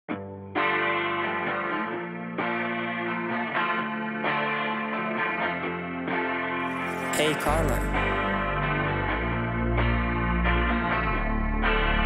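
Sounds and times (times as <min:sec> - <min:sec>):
guitar chord ringing: 0:00.2 - 0:12.0
quiet guitar note: 0:06.9 - 0:08.8.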